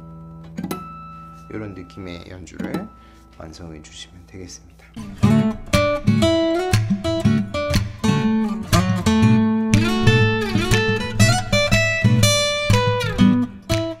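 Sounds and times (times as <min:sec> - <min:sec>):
fingerstyle acoustic guitar: 0:00.0 - 0:03.5, 0:04.8 - 0:14.0.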